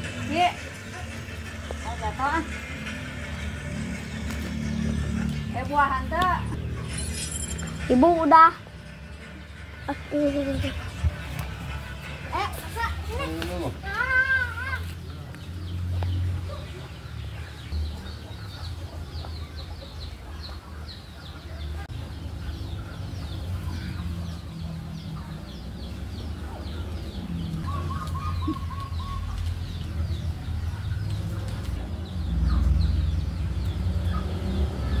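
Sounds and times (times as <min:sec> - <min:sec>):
birds chirping: 0:00.0 - 0:35.0.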